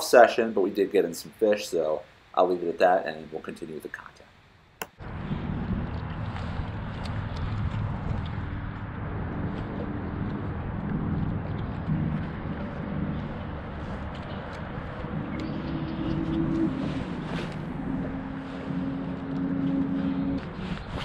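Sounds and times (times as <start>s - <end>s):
low steady hum: 4.4s - 21.0s
wind rumble on microphone: 5.0s - 21.0s.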